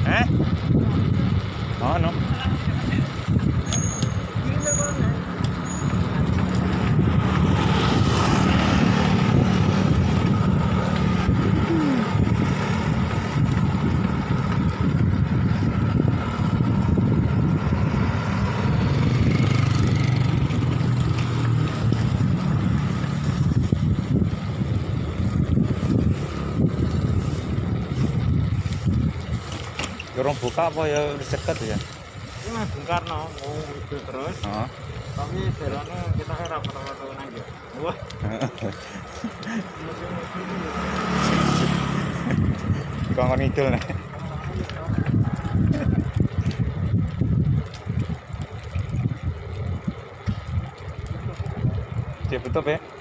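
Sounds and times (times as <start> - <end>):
bicycle road noise: 0.0 - 53.0
wind rumbling on microphone: 0.0 - 53.0.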